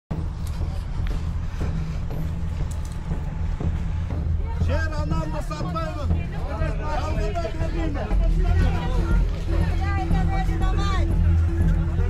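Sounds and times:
faint indistinct voices: 0.1 - 12.0
low rumble: 0.1 - 12.0.

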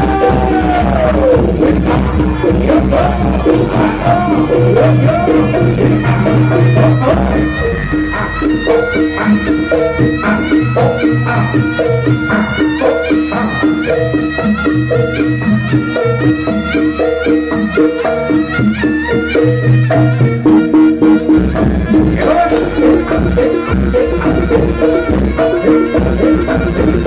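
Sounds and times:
hand drums: 0.0 - 27.0
shawm melody: 0.0 - 27.0.

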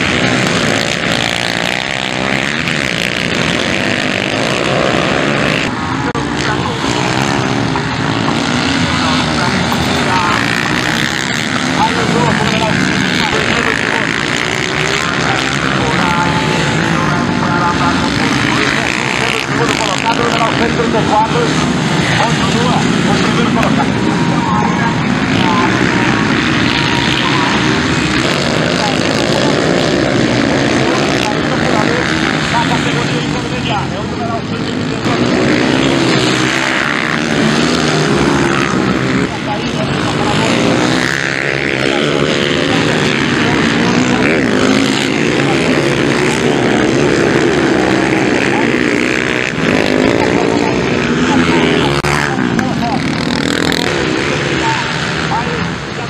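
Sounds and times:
commentator talking: 0.0 - 56.0
dirt bike engines racing: 0.0 - 56.0.

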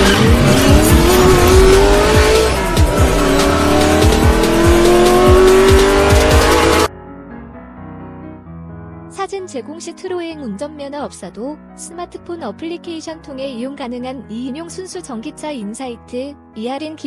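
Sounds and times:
electronic music with heavy beat: 0.0 - 6.9
race car engine revving: 0.0 - 6.9.

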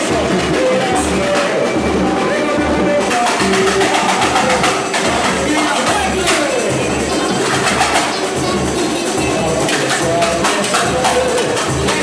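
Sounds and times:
bass drums beating: 0.0 - 12.0.

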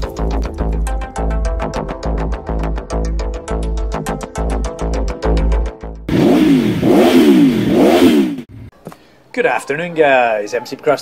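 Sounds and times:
intro music: 0.0 - 8.1
motorcycle engine revving: 6.0 - 8.7.

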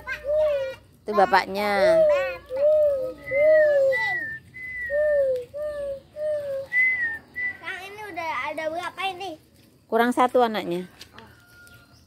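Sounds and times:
person whistling gliding notes: 3.2 - 7.8.

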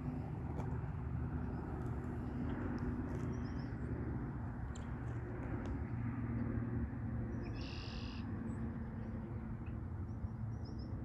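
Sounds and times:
constant low hum: 0.0 - 11.0
steady low rumble: 0.0 - 11.0.

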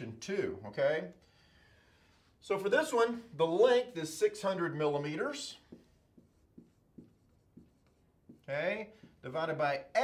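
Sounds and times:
marker writing on a whiteboard: 4.1 - 10.0.

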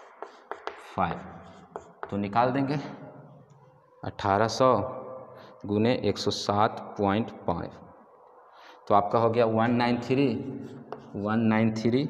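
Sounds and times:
chalk writing on a chalkboard: 0.0 - 2.3, 10.0 - 11.5.

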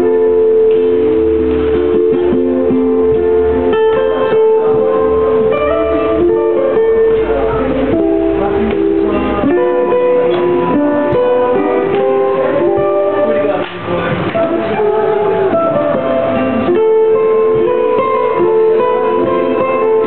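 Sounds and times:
solo ukulele playing: 0.0 - 20.0.

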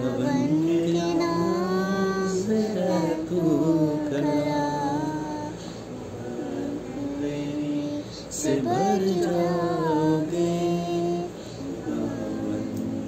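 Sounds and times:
girl singing a hymn: 0.0 - 13.0.

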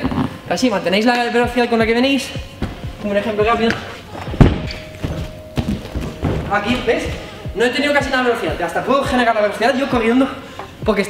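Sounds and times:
feet landing and running on mats: 2.6 - 7.2
heavy thud: 4.2 - 7.0.

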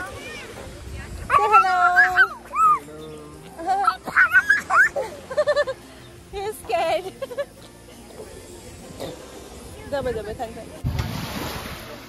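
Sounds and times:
small child crying and squealing: 1.4 - 2.8, 3.8 - 5.0.

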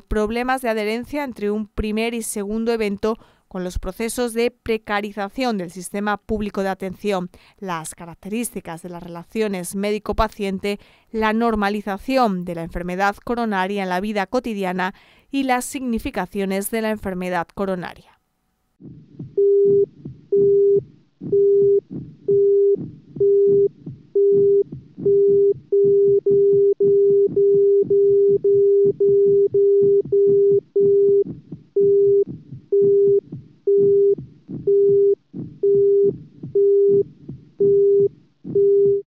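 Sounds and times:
low thumps: 18.8 - 39.0
heart monitor beeps: 19.2 - 39.0.

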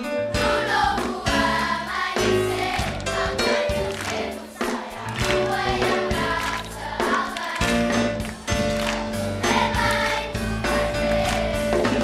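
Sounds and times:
drums: 0.0 - 12.0
children's choir singing: 0.3 - 12.0.

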